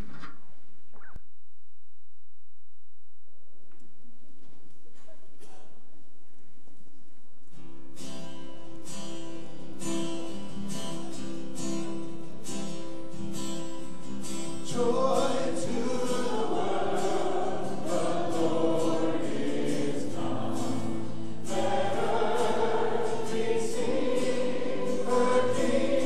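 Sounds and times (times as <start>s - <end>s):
acoustic guitar strumming: 7.6s - 26.0s
congregation singing a worship song: 14.5s - 26.0s.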